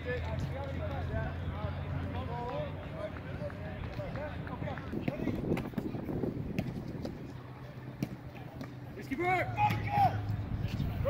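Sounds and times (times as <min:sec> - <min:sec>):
distant people talking and calling: 0:00.0 - 0:11.0
steady low rumble: 0:00.9 - 0:09.0.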